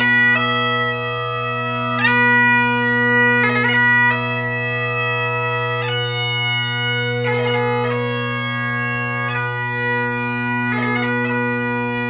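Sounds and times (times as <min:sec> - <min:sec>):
bagpipe playing: 0:00.0 - 0:12.0.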